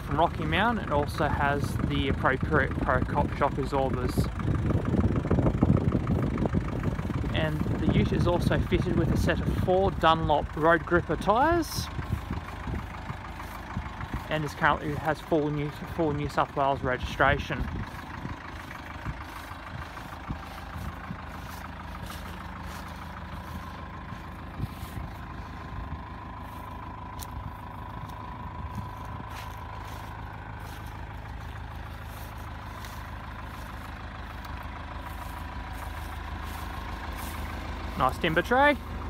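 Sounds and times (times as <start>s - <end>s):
diesel engine idling: 0.0s - 39.0s.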